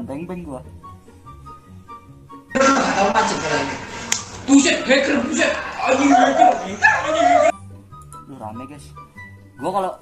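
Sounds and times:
faint background music: 0.0s - 10.0s
people yelling over video chat: 2.6s - 7.5s.

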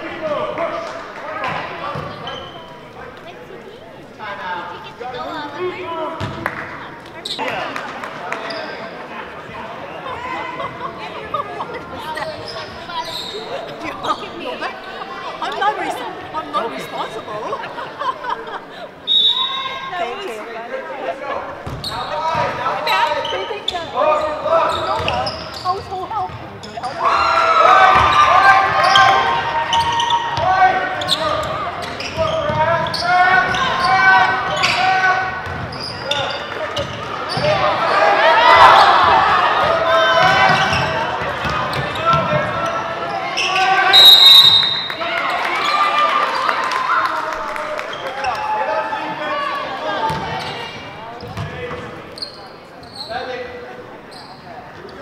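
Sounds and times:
referee's whistle: 19.1s - 19.8s, 43.4s - 45.0s.

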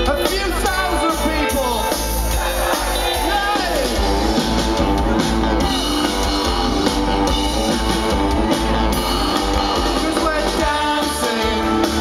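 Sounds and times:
drum kit: 0.0s - 12.0s
electric guitar: 0.0s - 12.0s
live band through loudspeakers: 0.0s - 12.0s.

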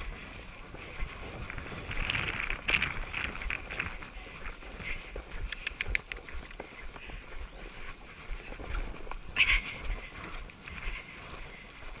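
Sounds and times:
horse hooves thudding on turf: 0.0s - 12.0s.

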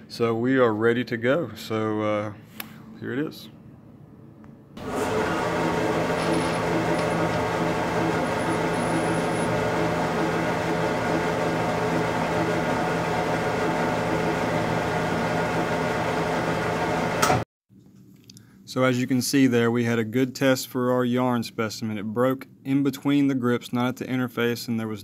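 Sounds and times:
testing machine mechanical hum: 1.2s - 17.4s.

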